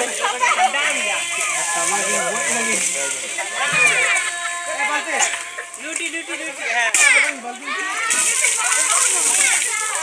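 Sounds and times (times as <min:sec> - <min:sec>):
water splashing: 0:00.0 - 0:10.0
children and women shrieking: 0:03.5 - 0:05.8.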